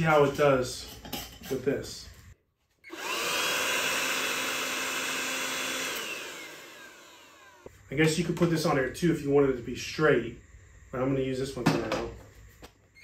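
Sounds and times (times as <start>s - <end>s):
blower motor whining: 2.9s - 7.7s.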